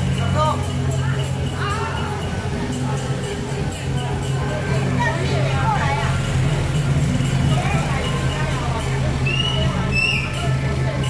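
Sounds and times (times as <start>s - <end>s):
people's voices: 0.0s - 11.0s
truck engine humming: 0.0s - 11.0s.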